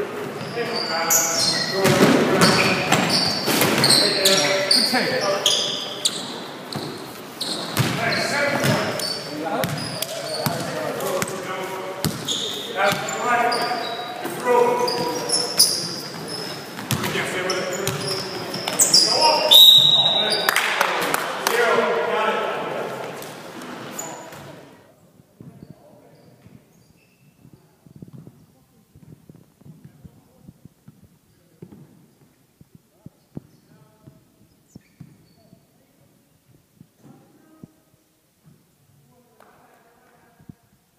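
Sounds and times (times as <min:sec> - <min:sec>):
sneaker squeaks: 0:00.2 - 0:11.4, 0:12.0 - 0:20.5, 0:23.8 - 0:24.7, 0:25.4 - 0:35.8
basketball bouncing: 0:07.6 - 0:09.0, 0:09.6 - 0:11.3, 0:12.0 - 0:12.3, 0:16.8 - 0:17.2.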